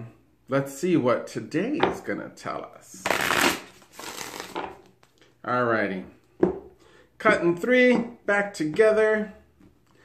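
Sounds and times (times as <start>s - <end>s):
cards being shuffled: 3.0s - 5.2s.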